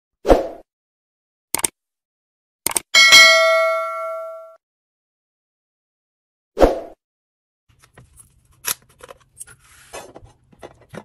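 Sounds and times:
quick double clicks: 1.5s - 1.8s, 2.6s - 2.9s
bell ding: 3.0s - 4.6s.

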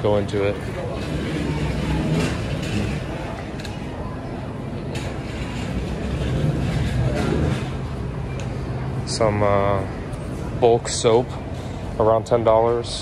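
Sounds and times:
general hubbub: 0.0s - 13.0s.

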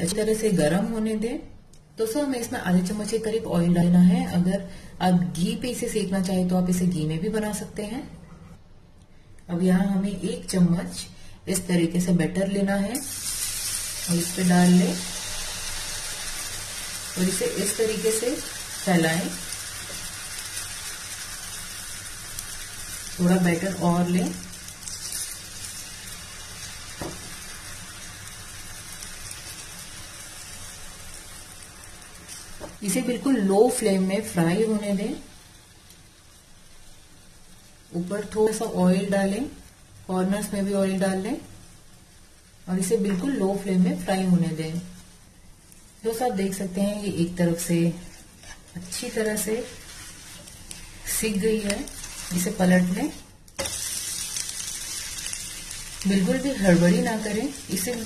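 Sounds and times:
batter sizzling in oil: 12.6s - 58.0s.

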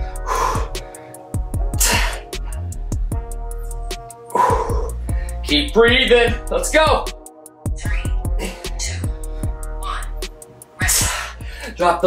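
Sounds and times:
man's forceful breath: 0.0s - 3.4s, 4.2s - 5.5s, 7.7s - 11.8s
music with steady beat: 0.0s - 12.0s.

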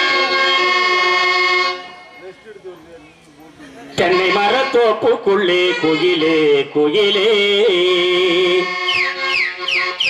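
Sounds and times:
harmonium chord: 0.0s - 10.0s.

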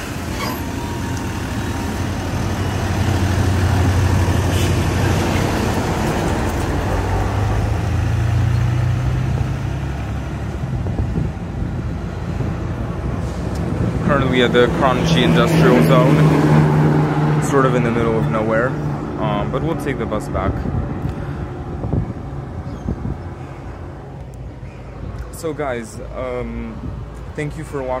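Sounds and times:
bus diesel engine accelerating: 0.0s - 28.0s.

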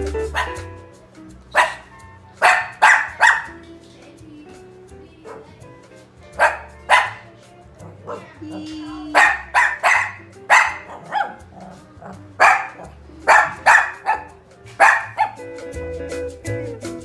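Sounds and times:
dog barking: 0.3s - 0.6s, 1.5s - 3.5s, 5.3s - 5.6s, 6.4s - 15.4s.

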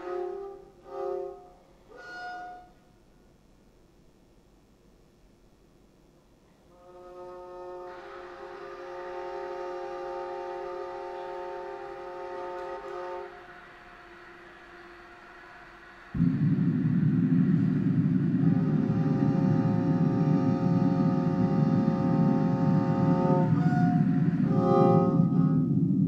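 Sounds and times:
loud low electronic noise: 12.8s - 26.0s
steady pitched drone: 12.8s - 26.0s.

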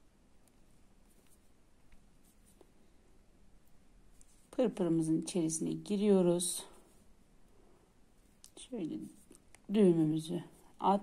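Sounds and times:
thread rustling and ticking: 0.0s - 5.0s.

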